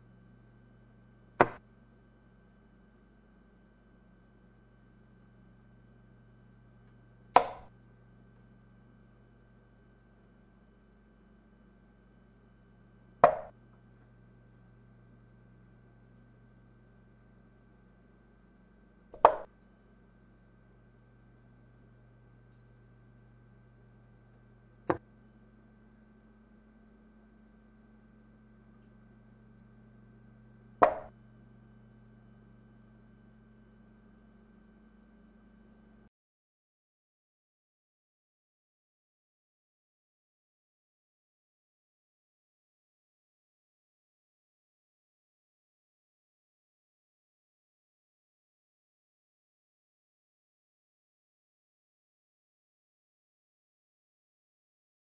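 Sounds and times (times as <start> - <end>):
chess piece knocking on board: 7.4 - 7.7, 13.2 - 13.5, 19.2 - 19.5, 30.8 - 31.1.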